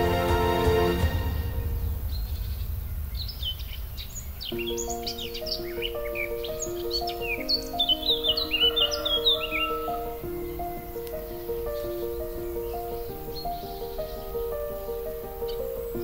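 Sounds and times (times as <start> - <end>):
soft instrumental music: 0.0 - 1.9, 4.6 - 16.0
small birds chirping: 2.0 - 16.0
slow melody of held notes: 4.5 - 16.0.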